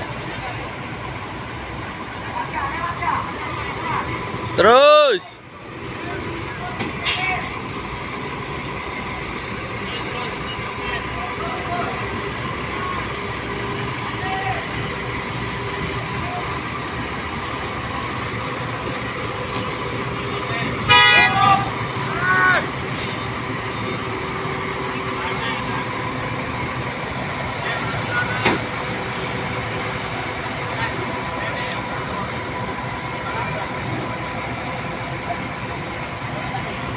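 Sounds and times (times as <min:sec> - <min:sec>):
diesel forklift engines running: 0:00.0 - 0:36.9.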